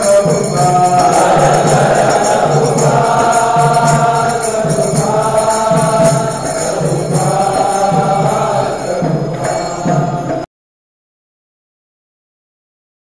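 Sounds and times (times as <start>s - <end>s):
steady drum beat: 0.0s - 10.4s
voices chanting: 0.0s - 10.5s.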